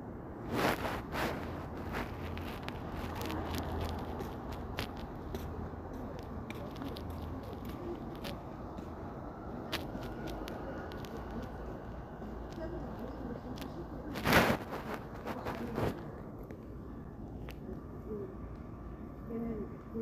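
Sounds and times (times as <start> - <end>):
low background hum: 0.0 - 20.0
handling clicks and rustles: 0.6 - 17.8.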